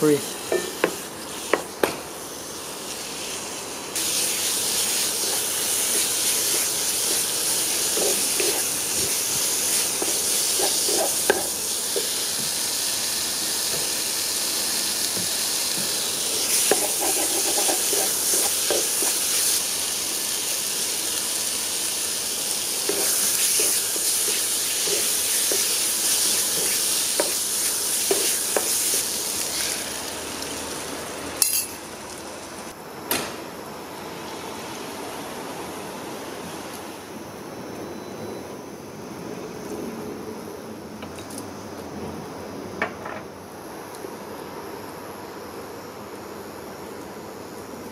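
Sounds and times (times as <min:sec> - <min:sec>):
food sizzling in a pan: 0:00.0 - 0:32.7
spatula scraping and knocking pan: 0:05.2 - 0:12.5, 0:15.2 - 0:19.2, 0:22.8 - 0:27.4, 0:28.0 - 0:29.0.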